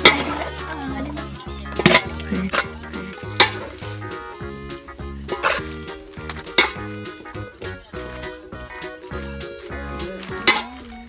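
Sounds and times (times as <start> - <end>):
utensils scraping metal bowl: 0.0 - 0.8, 1.7 - 4.2, 5.2 - 7.4, 8.0 - 10.9
background music: 0.0 - 11.0
utensil clinking bowl: 10.2 - 11.0.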